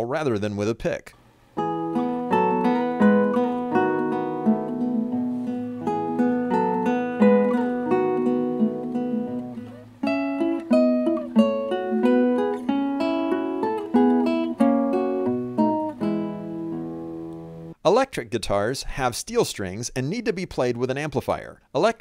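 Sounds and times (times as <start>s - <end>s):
classical guitar fingerstyle: 1.6s - 17.8s.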